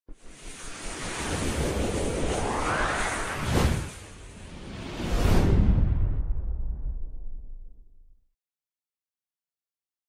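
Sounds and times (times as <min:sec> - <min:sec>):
rushing wind-like whoosh: 0:00.1 - 0:07.5.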